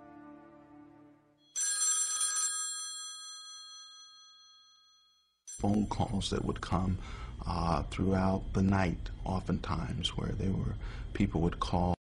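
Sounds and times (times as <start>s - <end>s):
telephone bell ringing: 1.5s - 5.7s.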